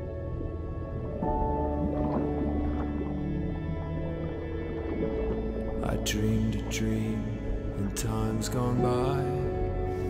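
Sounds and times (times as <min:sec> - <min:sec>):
slow ambient music: 0:00.0 - 0:10.0
person singing: 0:05.8 - 0:09.7.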